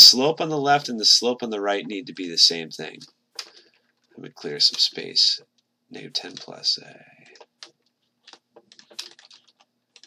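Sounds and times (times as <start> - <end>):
clicks and taps on computer keys: 3.0 - 4.1, 4.7 - 6.6, 7.2 - 10.0.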